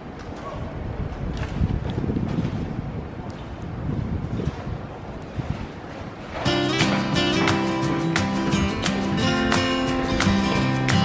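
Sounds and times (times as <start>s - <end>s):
outdoor ambience: 0.0s - 11.0s
wind buffeting microphone: 0.0s - 11.0s.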